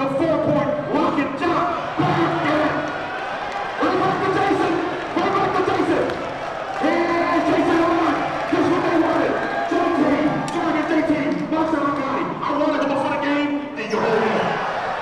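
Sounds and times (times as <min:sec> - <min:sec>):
crowd noise in a gymnasium: 0:00.0 - 0:15.0.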